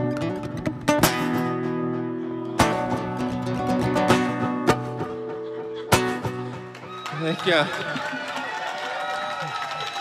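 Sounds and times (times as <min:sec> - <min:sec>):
audience whooping and cheering: 0:06.4 - 0:10.0.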